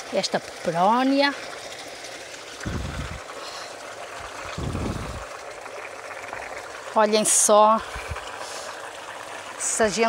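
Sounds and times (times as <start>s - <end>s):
trickle of running water: 0.0s - 10.0s
low rumbles: 2.6s - 3.2s, 4.5s - 5.3s.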